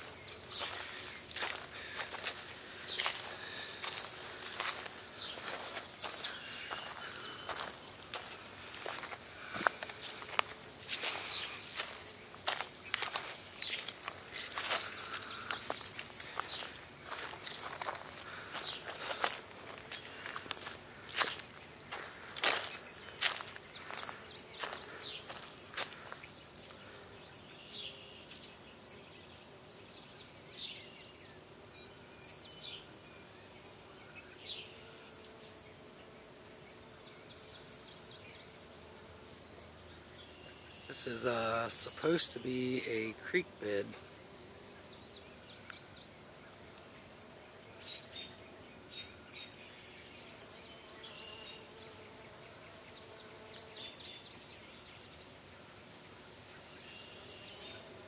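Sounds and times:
footsteps crunching on dry leaves: 0:00.0 - 0:26.2
high-pitched insect chorus: 0:00.0 - 0:58.0.

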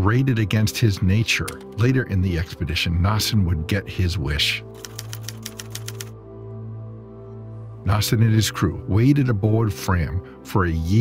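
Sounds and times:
low chord background music: 0:00.0 - 0:11.0
typewriter key clicks: 0:01.5 - 0:01.8, 0:04.8 - 0:06.1.

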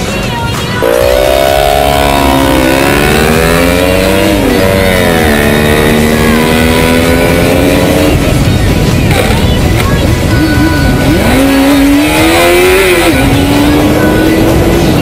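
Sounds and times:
motorcycle engine revving: 0:00.8 - 0:15.0.

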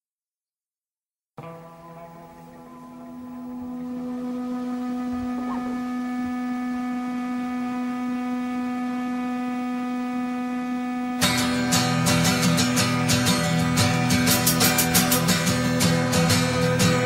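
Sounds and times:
sustained droning note: 0:01.4 - 0:17.0.

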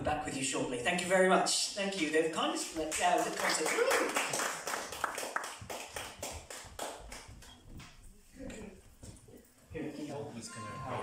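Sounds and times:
audience applauding: 0:02.9 - 0:07.3.

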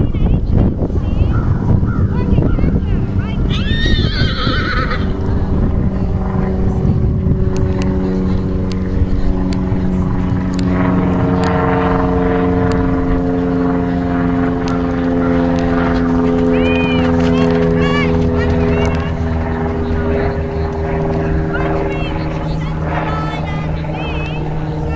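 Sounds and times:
engine drone: 0:00.0 - 0:24.9
wind on microphone: 0:00.0 - 0:24.9.

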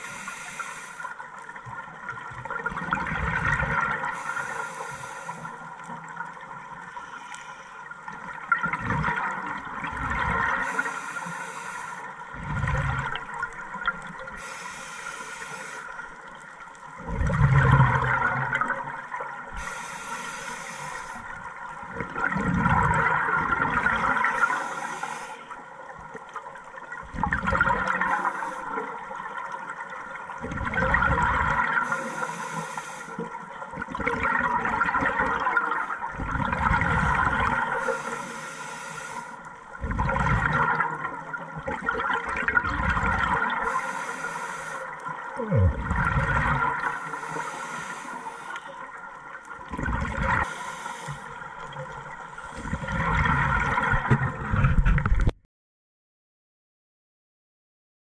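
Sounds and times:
regulator inhale hiss: 0:00.0 - 0:01.2, 0:04.1 - 0:05.7, 0:06.9 - 0:07.9, 0:10.5 - 0:12.1, 0:14.3 - 0:16.0, 0:19.5 - 0:21.3, 0:24.3 - 0:25.6, 0:28.0 - 0:28.9, 0:31.8 - 0:33.2, 0:37.7 - 0:39.5, 0:43.6 - 0:45.0, 0:46.8 - 0:48.9, 0:50.4 - 0:51.4
gurgling exhaled bubbles: 0:02.1 - 0:04.2, 0:08.5 - 0:10.6, 0:12.3 - 0:14.3, 0:17.0 - 0:19.2, 0:21.9 - 0:24.4, 0:27.0 - 0:28.2, 0:30.3 - 0:31.9, 0:33.8 - 0:37.9, 0:39.8 - 0:43.7, 0:45.2 - 0:47.4, 0:49.5 - 0:50.5, 0:51.2 - 0:55.3.

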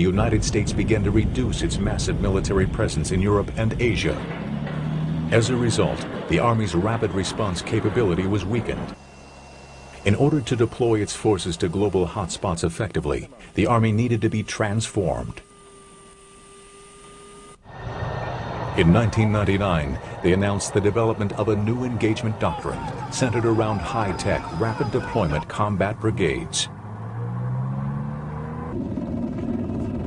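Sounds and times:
low-flying propeller plane rushing: 0:00.0 - 0:13.6, 0:17.6 - 0:30.0
heavy vehicle engine running: 0:00.0 - 0:14.4, 0:17.6 - 0:30.0.

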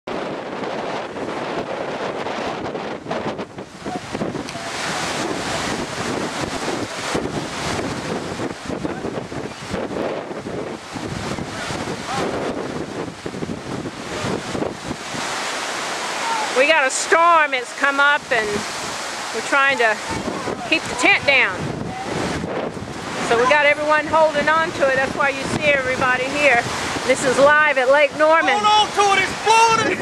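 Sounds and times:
strong wind gusting: 0:00.1 - 0:30.0.

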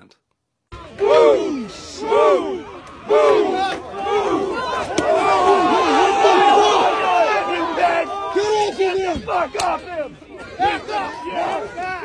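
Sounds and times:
crowd shouting: 0:00.7 - 0:12.0.

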